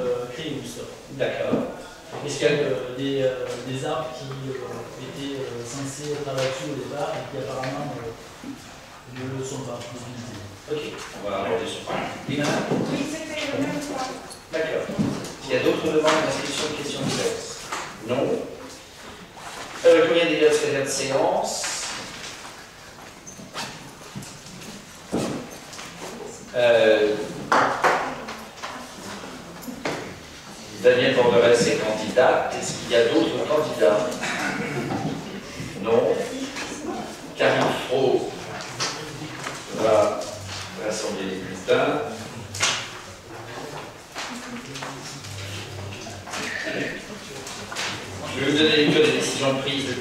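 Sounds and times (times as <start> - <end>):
meeting room background noise: 0.0 - 50.0
low indistinct voices: 21.2 - 50.0.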